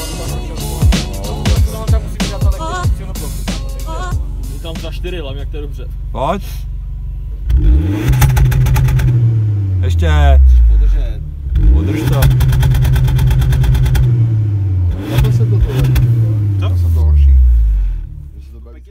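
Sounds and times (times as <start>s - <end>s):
car engine revving: 0.0s - 18.9s.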